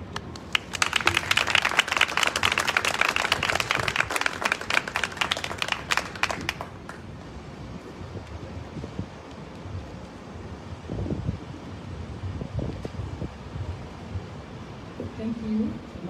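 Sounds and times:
audience applauding: 0.1 - 7.2.

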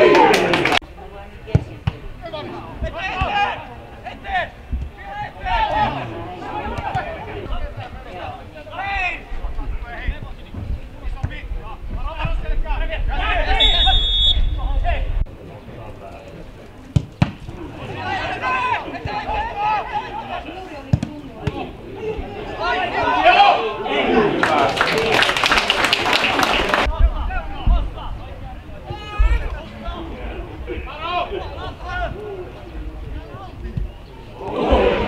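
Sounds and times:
players shouting: 0.0 - 0.8, 2.2 - 9.3, 13.0 - 15.1, 17.4 - 28.0, 28.7 - 35.0
wind rumbling on microphone: 8.9 - 16.6, 26.7 - 35.0.

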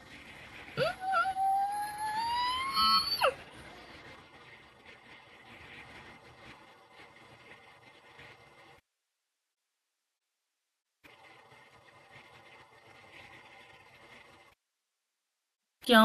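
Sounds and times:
high rising cry: 0.8 - 3.4.

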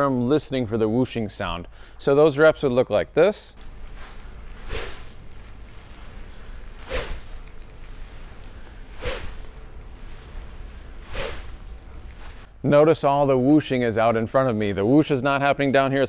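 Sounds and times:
training stick swing whooshes: 3.6 - 12.5.

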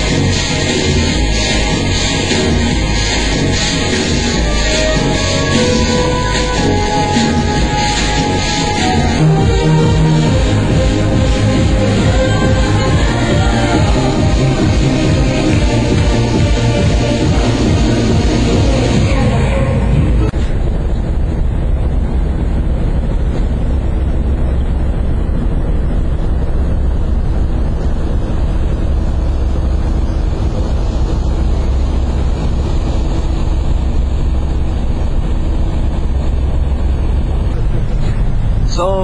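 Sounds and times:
wind noise on microphone: 0.0 - 38.7
ferry engine low rumble: 0.0 - 39.0.

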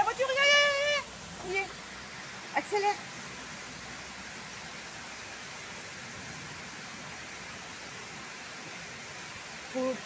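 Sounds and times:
torrential rain: 0.0 - 10.0.

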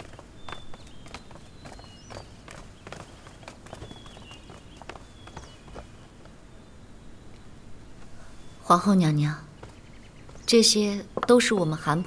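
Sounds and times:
shoes clicking on wooden floor: 0.0 - 6.4, 9.5 - 11.6.

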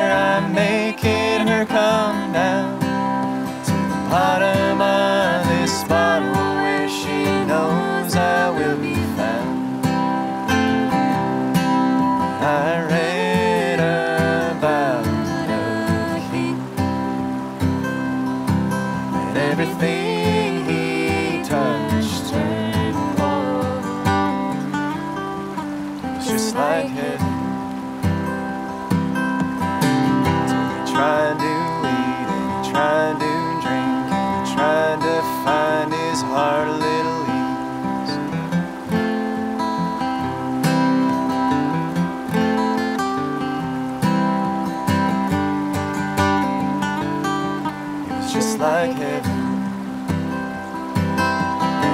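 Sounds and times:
acoustic guitar strumming: 0.0 - 51.9.

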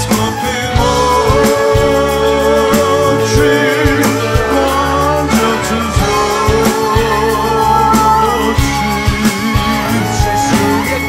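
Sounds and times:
pop-rock band playing: 0.0 - 11.0.

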